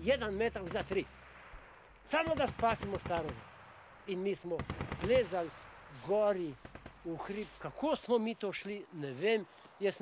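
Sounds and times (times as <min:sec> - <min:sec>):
man speaking: 0:00.0 - 0:01.1, 0:02.0 - 0:03.4, 0:04.0 - 0:10.0.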